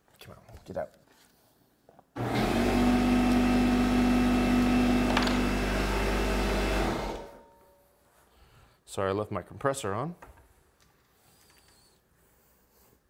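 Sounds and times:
air compressor running: 2.2 - 7.4
dust collectors running: 2.2 - 7.4.

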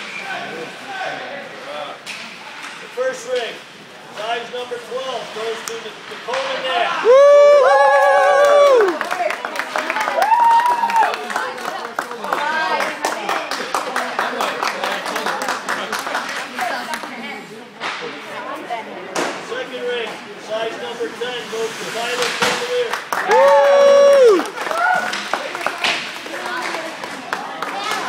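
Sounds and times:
people talking in large room: 0.0 - 28.0
people whooping: 7.0 - 9.0, 10.1 - 11.2, 23.2 - 25.2.

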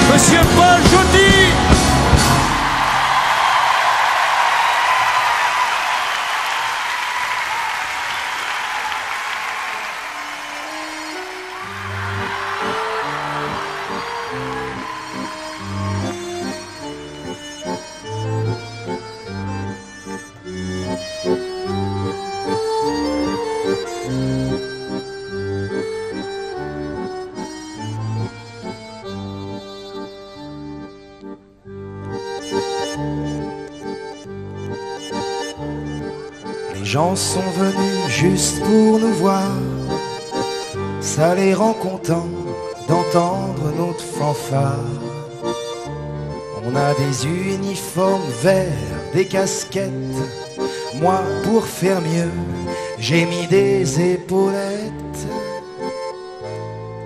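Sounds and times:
accordion-like melody: 0.0 - 3.2, 6.1 - 57.0
live band playing: 0.0 - 3.5, 9.4 - 30.9, 31.8 - 57.0
crowd cheering and whistling: 0.9 - 17.1.

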